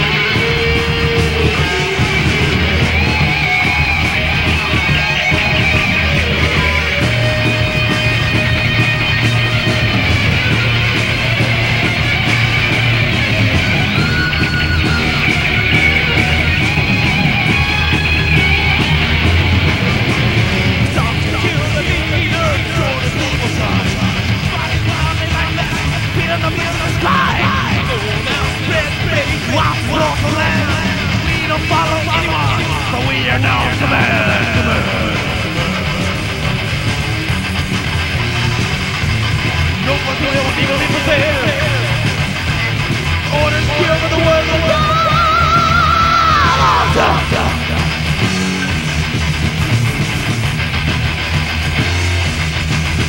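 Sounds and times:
distorted electric guitars: 0:00.0 - 0:53.0
heavy metal band playing: 0:00.0 - 0:53.0
steady drum beat: 0:00.0 - 0:53.0
high held vocal note with vibrato: 0:33.0 - 0:37.1.

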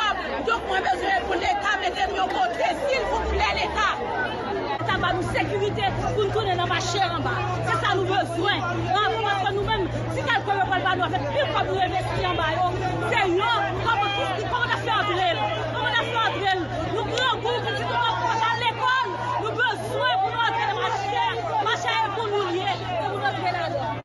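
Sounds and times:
woman shouting: 0:00.0 - 0:04.0, 0:04.8 - 0:24.0
crowd chatter: 0:00.0 - 0:24.0.

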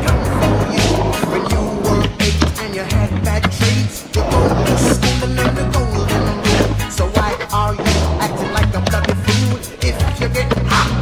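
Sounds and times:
music with deep bass line: 0:00.0 - 0:11.0
skateboard clacks: 0:00.0 - 0:11.0
skateboard wheels rolling on concrete: 0:00.0 - 0:11.0.

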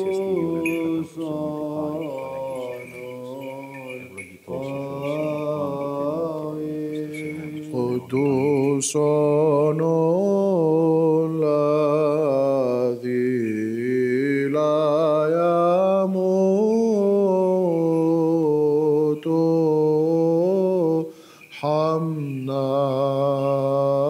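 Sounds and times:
man chanting a hymn: 0:00.0 - 0:24.0.

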